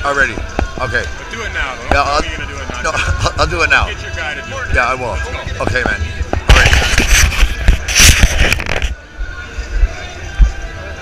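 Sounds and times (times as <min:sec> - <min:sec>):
street noise: 0:00.0 - 0:11.0
rustling and scraping handling noise: 0:00.2 - 0:09.0.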